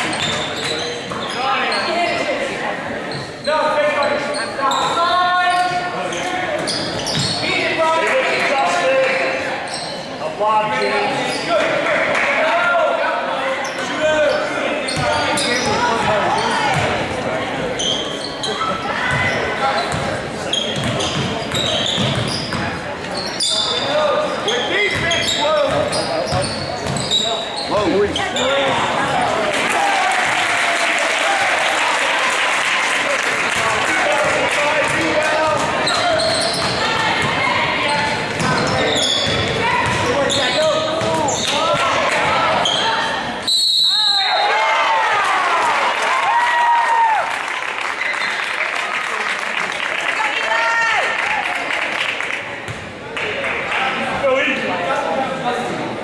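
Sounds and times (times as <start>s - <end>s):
people shouting in a gym: 33.9s - 43.3s.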